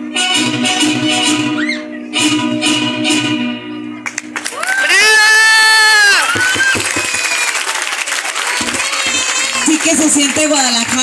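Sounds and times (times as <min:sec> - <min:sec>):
audience clapping: 0:04.0 - 0:11.0.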